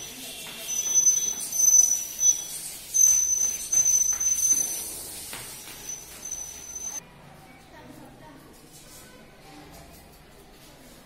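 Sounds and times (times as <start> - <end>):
high steady whistle: 0.6 - 5.0, 5.8 - 7.0.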